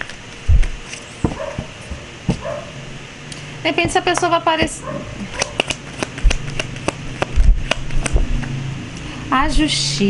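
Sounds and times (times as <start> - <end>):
cards being shuffled: 5.2 - 8.5.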